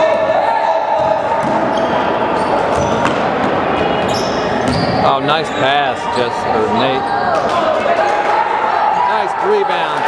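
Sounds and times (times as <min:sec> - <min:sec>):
basketball bouncing on court: 0:00.9 - 0:02.0, 0:04.6 - 0:05.0
sneakers squeaking on court: 0:01.0 - 0:05.7.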